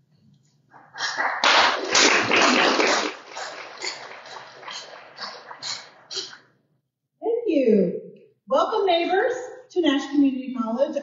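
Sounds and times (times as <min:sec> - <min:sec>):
audience applauding: 0:01.0 - 0:06.0.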